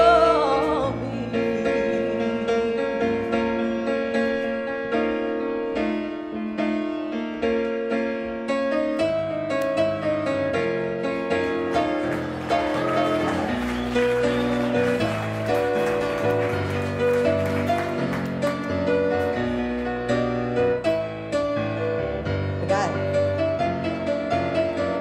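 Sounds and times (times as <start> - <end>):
grand piano playing: 0.0 - 25.0.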